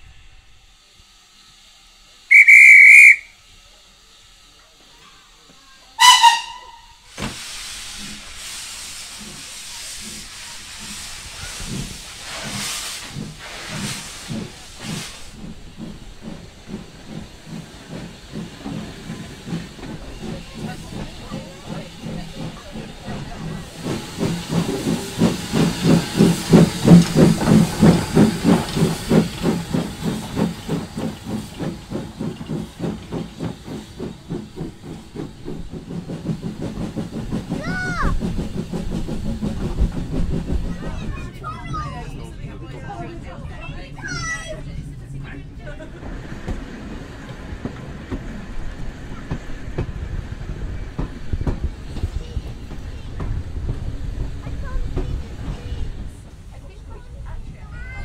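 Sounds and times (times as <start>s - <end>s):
steam hissing: 0.0s - 41.9s, 45.8s - 58.0s
railway coach rumbling: 0.0s - 58.0s
steam locomotive exhaust beats: 0.0s - 58.0s.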